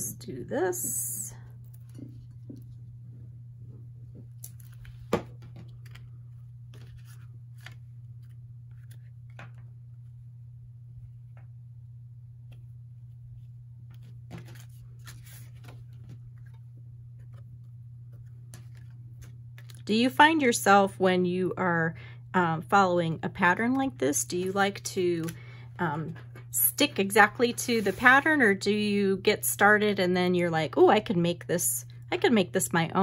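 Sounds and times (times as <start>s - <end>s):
steady low hum: 0.0s - 33.0s
paper rustling: 4.4s - 9.7s, 13.4s - 19.8s, 26.1s - 28.3s.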